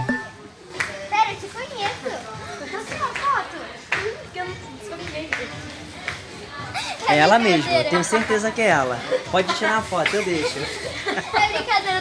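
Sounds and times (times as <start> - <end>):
girls chattering: 1.1 - 12.0.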